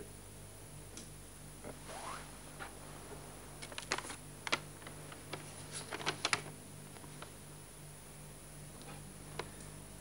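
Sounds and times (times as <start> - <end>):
paper crackling and rustling: 3.6 - 7.4.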